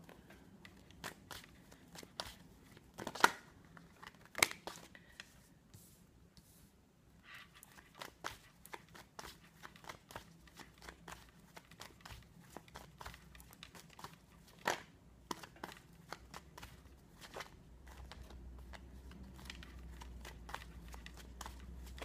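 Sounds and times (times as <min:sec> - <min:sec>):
cards being shuffled: 0:00.1 - 0:05.3, 0:07.4 - 0:22.0.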